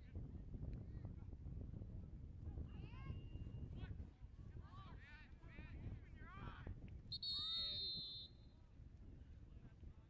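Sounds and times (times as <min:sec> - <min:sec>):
wind rumbling on microphone: 0:00.0 - 0:07.1.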